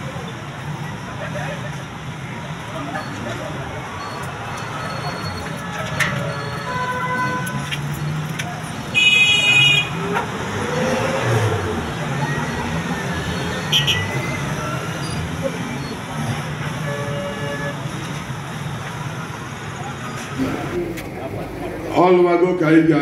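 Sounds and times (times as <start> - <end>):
street hum: 0.0 - 23.0
vehicle horn: 6.6 - 7.6, 8.9 - 10.0, 13.7 - 14.2, 16.8 - 17.8.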